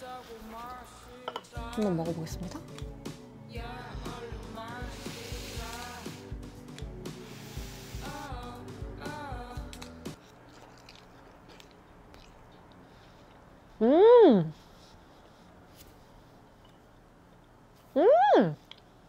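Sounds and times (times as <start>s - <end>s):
background music with steady beat: 0.0s - 10.2s.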